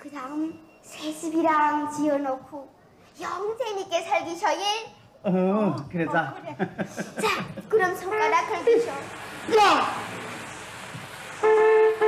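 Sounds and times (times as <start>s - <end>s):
vehicle horn: 11.4s - 12.0s.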